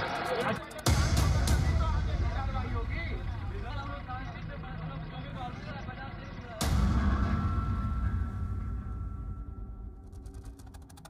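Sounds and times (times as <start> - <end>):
deep cinematic boom: 0.9 - 10.5.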